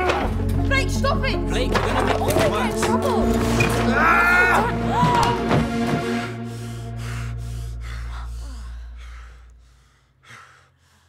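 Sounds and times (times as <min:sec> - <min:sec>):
low music drone: 0:00.0 - 0:10.1
person breathing hard: 0:06.4 - 0:11.0.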